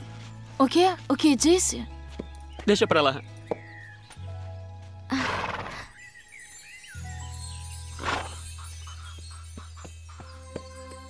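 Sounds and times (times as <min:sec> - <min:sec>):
soft background music: 0:00.0 - 0:11.0
horse snorting: 0:05.1 - 0:05.9, 0:08.0 - 0:08.4.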